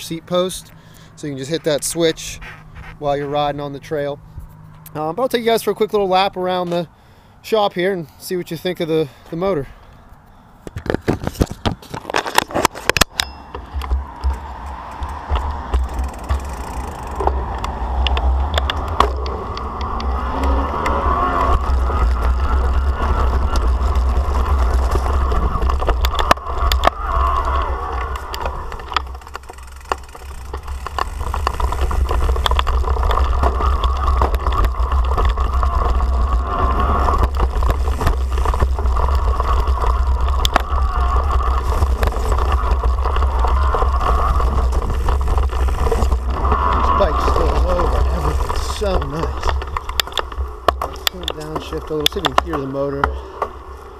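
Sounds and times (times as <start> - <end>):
bike frame and cables rattling: 10.6 - 53.9
tyres rolling over concrete and grass: 10.6 - 53.9
wind rumble on microphone: 13.5 - 53.9.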